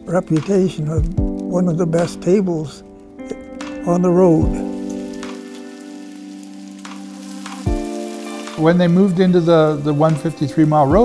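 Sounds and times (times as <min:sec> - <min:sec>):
oil popping: 0:03.0 - 0:10.7
food sizzling in oil: 0:04.4 - 0:10.8.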